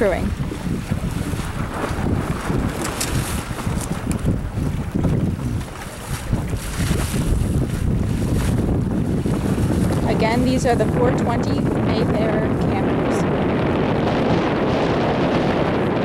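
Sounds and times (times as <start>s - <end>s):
choppy water: 0.0s - 16.0s
wind buffeting microphone: 0.0s - 16.0s.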